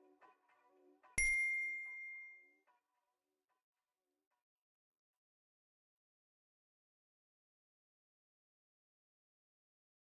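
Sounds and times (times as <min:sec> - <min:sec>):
bright bell ding: 0:01.2 - 0:02.5.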